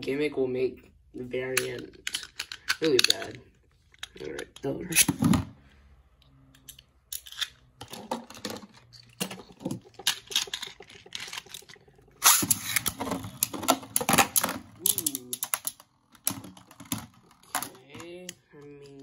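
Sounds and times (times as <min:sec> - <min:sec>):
spinning tops clashing and rattling: 0:07.1 - 0:16.4
spinning top turning: 0:08.9 - 0:16.4.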